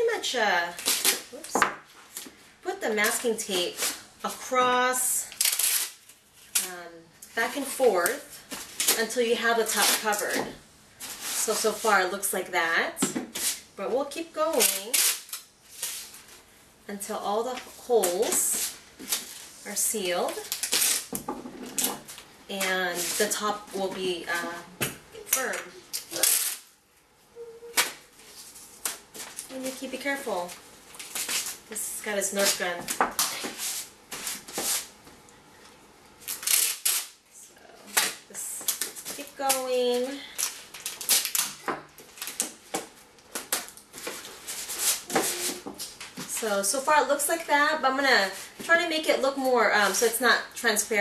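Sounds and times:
tape ripping: 0.6 - 1.6, 5.3 - 6.7, 14.5 - 16.3, 20.3 - 23.4, 25.2 - 26.7, 30.9 - 31.7, 36.2 - 37.2, 37.9 - 46.2.

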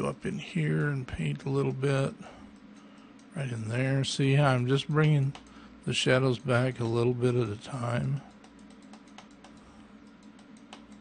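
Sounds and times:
low steady hum: 0.0 - 11.0
computer mouse and keys clicking: 2.5 - 3.4, 5.0 - 5.6, 7.8 - 11.0.

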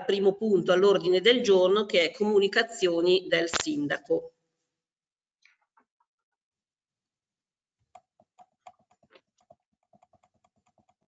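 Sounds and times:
keyboard typing: 8.0 - 11.0.

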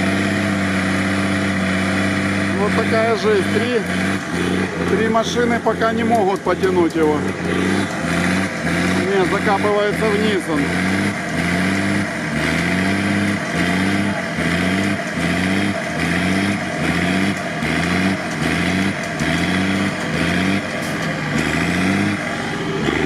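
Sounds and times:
truck engine working under load: 0.0 - 23.0.

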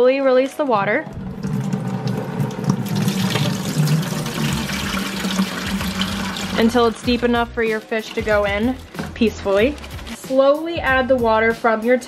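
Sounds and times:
water pouring into plastic bucket: 1.1 - 10.2.

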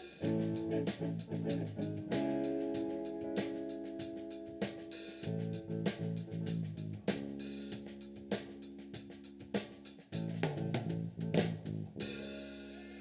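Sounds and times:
drum kit hits and cymbals: 0.0 - 13.0
rock band playing: 0.0 - 13.0.

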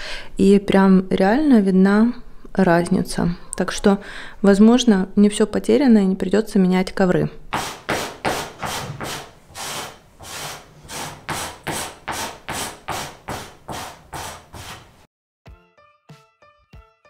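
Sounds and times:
metal scraper rasping on rug: 7.5 - 15.1.

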